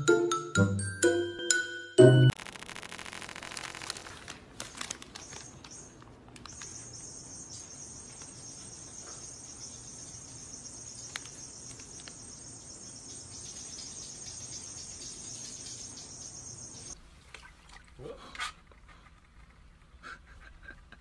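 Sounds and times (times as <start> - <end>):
crickets chirping: 6.5 - 17.0.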